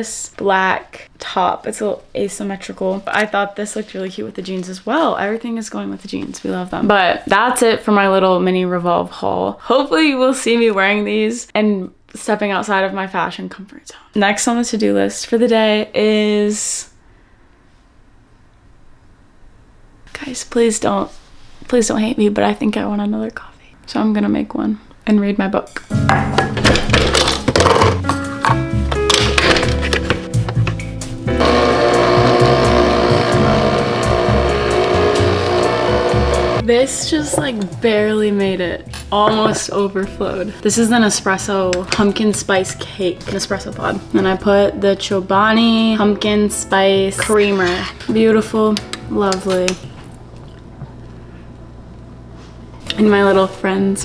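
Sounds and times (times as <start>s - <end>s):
background music: 25.7s - 49.8s
coffee machine whirring hum: 31.4s - 36.7s
low room hum: 47.2s - 54.0s.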